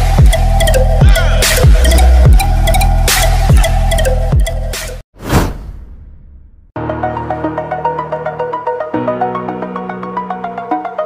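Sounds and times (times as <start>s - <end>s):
whoosh sound effect: 5.2s - 6.6s.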